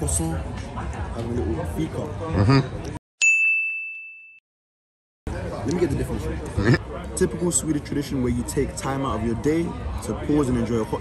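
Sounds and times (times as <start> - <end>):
bell ding: 3.2 - 4.4.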